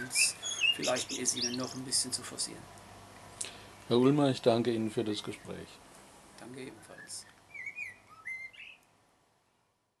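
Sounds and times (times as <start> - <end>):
songbird whistling: 0.0 - 1.8, 6.9 - 8.8.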